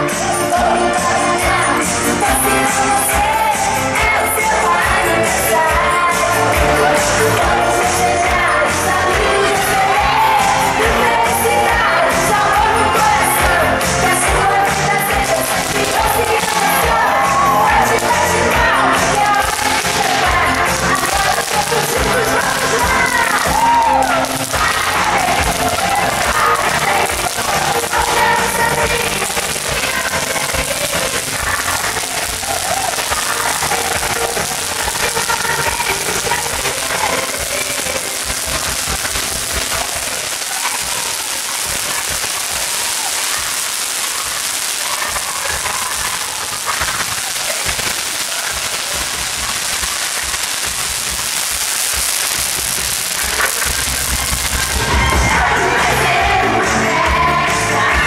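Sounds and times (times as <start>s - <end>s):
fountain fireworks hissing: 0.0s - 56.8s
song from loudspeakers: 0.0s - 58.0s.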